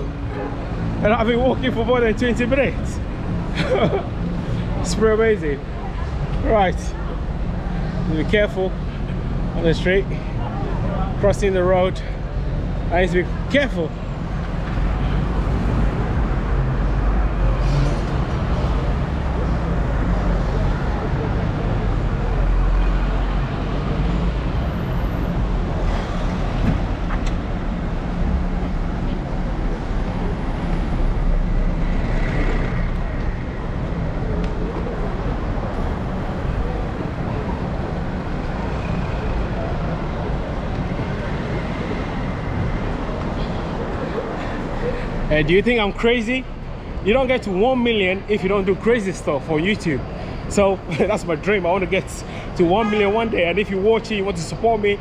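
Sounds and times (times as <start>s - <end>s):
cars and buses passing: 0.0s - 55.0s.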